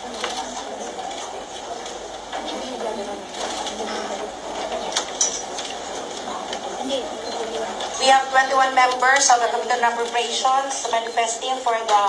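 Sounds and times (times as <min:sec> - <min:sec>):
murmur of many people: 0:00.0 - 0:12.0.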